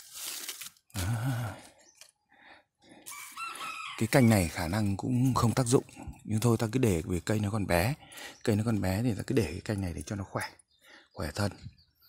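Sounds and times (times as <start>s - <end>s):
rooster crowing: 3.1s - 4.5s.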